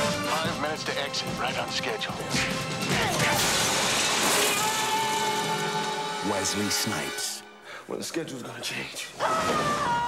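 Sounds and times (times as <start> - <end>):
movie trailer music: 0.0 - 7.7
crashing smashing sound effect: 2.9 - 5.6.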